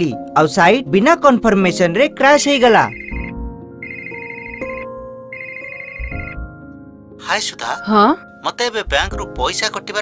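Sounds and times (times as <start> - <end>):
soft background music: 0.0 - 10.0
phone electronic ringtone: 2.9 - 6.4.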